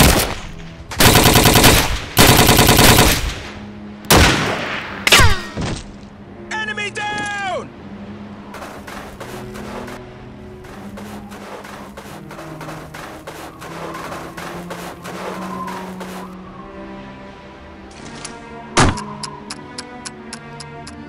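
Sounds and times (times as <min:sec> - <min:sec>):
rapid gunfire: 0:00.0 - 0:00.3, 0:01.0 - 0:03.4
background music with low notes: 0:00.0 - 0:21.0.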